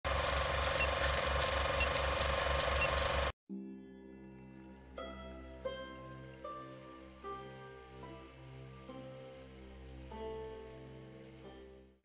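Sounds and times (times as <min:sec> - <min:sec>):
film projector whirring and rattling: 0:00.0 - 0:03.3
soft plucked music: 0:03.5 - 0:11.7.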